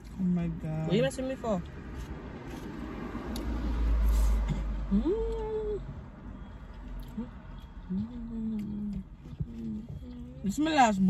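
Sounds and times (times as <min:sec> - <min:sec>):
car interior rumble: 0:04.0 - 0:11.0.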